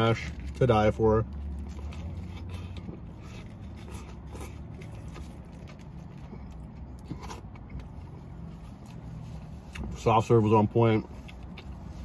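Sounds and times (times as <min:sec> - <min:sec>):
chewing burger: 0:00.0 - 0:10.0, 0:11.0 - 0:12.0.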